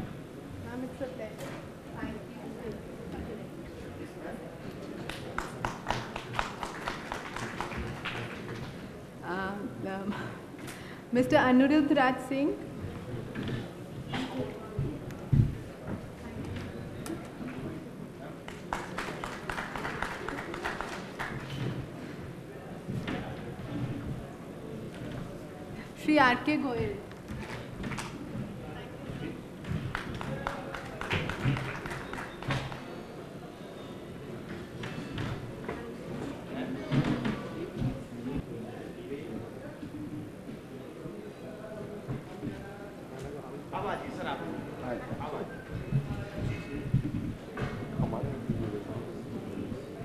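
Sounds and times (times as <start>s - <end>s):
audience applause: 5.4s - 8.6s, 18.5s - 21.6s, 29.9s - 32.8s.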